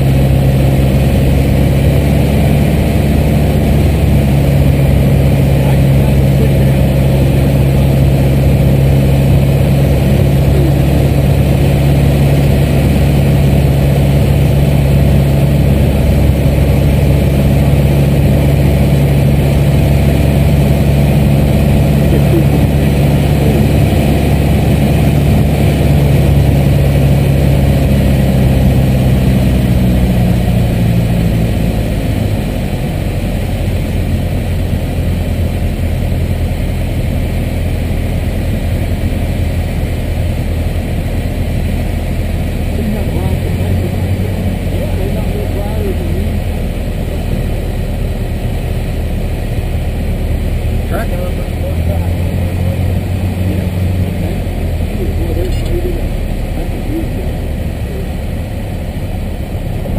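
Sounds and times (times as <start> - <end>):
light aircraft engine drone: 0.0 - 59.9.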